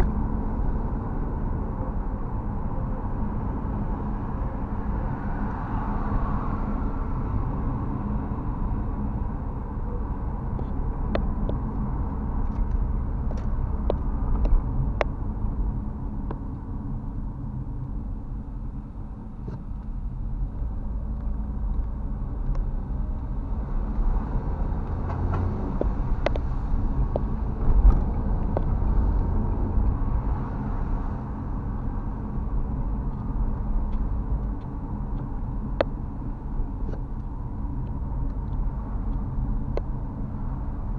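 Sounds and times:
engine and tyre rumble: 0:00.0 - 0:40.9.

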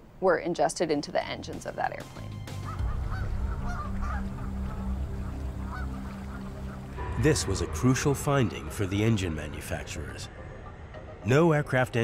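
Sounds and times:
geese honking in flight: 0:02.5 - 0:07.0
steady low drone: 0:02.8 - 0:12.0.

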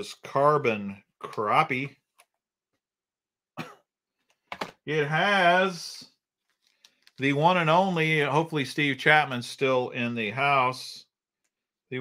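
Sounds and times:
man speaking: 0:00.0 - 0:02.1, 0:04.8 - 0:06.2, 0:07.2 - 0:11.1
man clearing his throat: 0:03.6 - 0:03.9.

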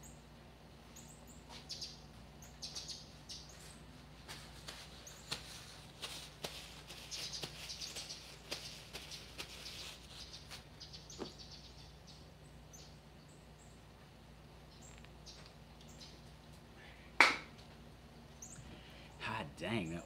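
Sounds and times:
birds chirping: 0:00.0 - 0:20.0
faint steady hum: 0:00.0 - 0:20.0
paper towel rustling: 0:03.5 - 0:10.7.

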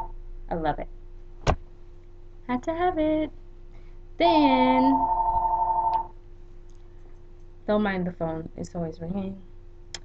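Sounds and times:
telephone ringing: 0:04.8 - 0:06.1.

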